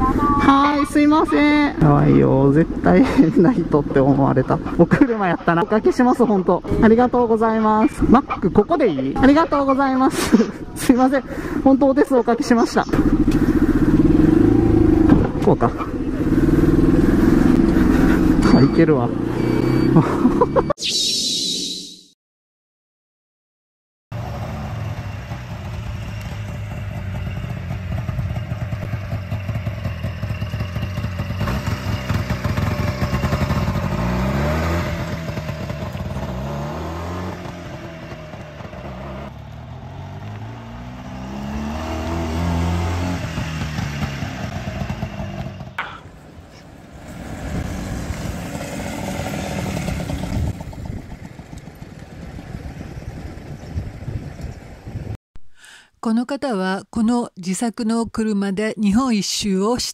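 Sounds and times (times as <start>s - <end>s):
small car engine revving: 13.0s - 20.7s, 24.2s - 50.8s.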